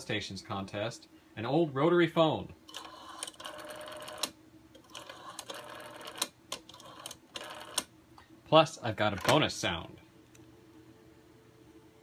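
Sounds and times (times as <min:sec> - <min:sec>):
rotary phone dial whirring: 0:02.7 - 0:07.9.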